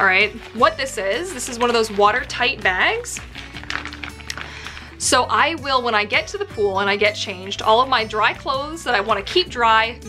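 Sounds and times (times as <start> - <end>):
dry bag crinkling: 0.0 - 5.2
soft background music: 0.0 - 10.0.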